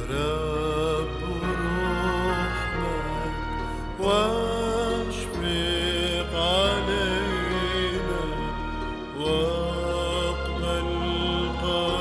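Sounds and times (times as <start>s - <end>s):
hymn with long held note: 0.0s - 12.0s
low sustained accompaniment: 0.0s - 12.0s.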